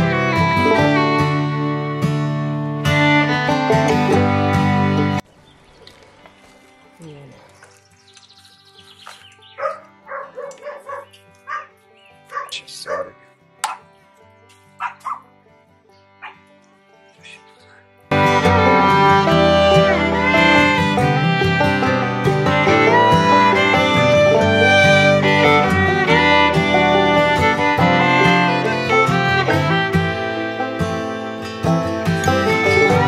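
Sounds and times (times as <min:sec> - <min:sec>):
fiddle-led bluegrass music: 0:00.0 - 0:05.2, 0:07.8 - 0:33.0
dog yipping and barking: 0:09.5 - 0:11.7, 0:12.3 - 0:13.8, 0:14.8 - 0:15.3, 0:16.2 - 0:16.4.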